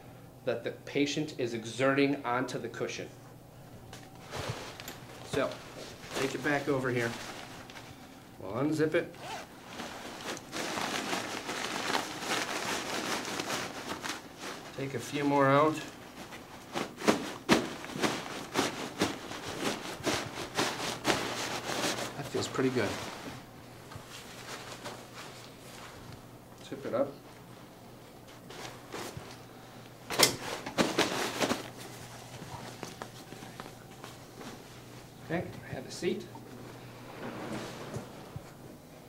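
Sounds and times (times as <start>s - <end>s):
cushion rustling and crinkling: 3.7s - 8.3s, 9.1s - 35.3s, 36.1s - 39.0s.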